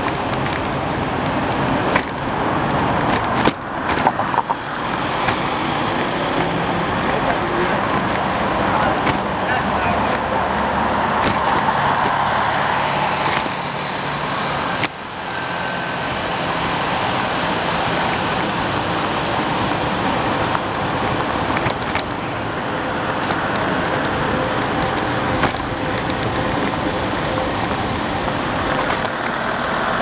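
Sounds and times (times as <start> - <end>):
bicycle clicks and rattles: 0.0 - 13.6, 17.8 - 29.5
city traffic road noise: 0.0 - 30.0.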